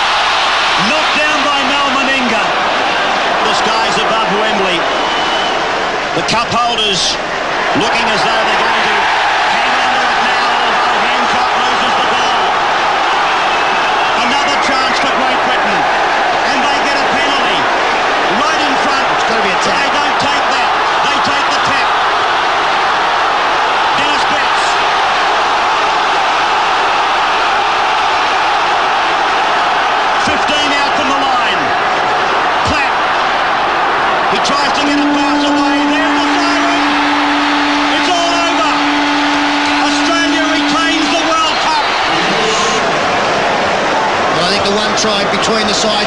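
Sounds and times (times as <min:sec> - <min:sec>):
stadium crowd din: 0:00.0 - 0:46.0.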